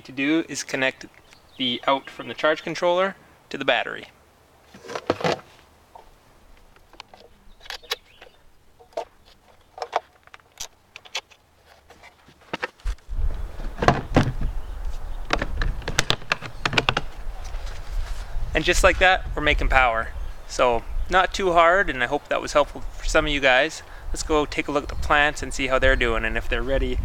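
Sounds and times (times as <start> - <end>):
rustling: 4.6 - 18.4.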